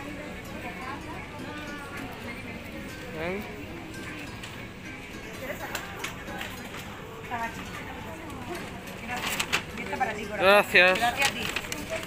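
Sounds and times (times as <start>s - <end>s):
steady shop hum: 0.0s - 12.0s.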